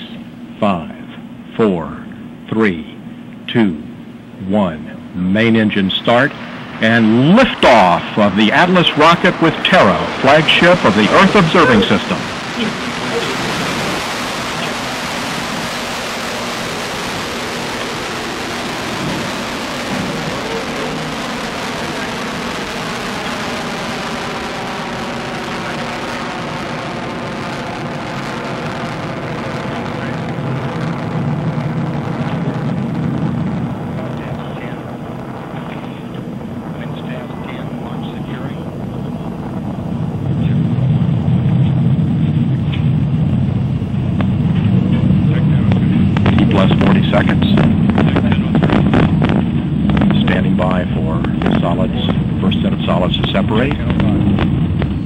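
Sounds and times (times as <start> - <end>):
rocket engine rumble: 0.0 - 55.0.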